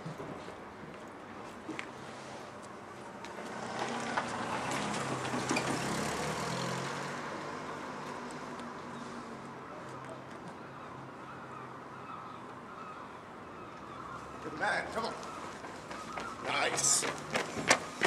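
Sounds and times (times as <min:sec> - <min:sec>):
car engine driving past: 0:03.5 - 0:08.5.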